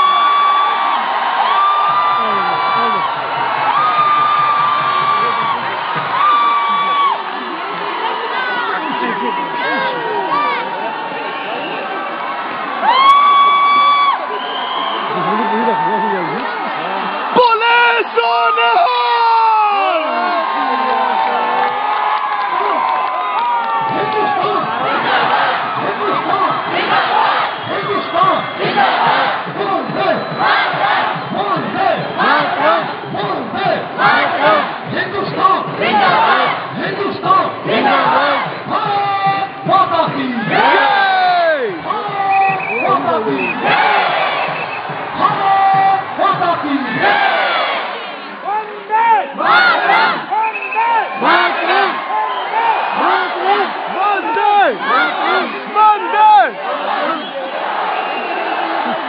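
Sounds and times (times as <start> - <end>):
crowd shouting and cheering: 0.0 - 59.0.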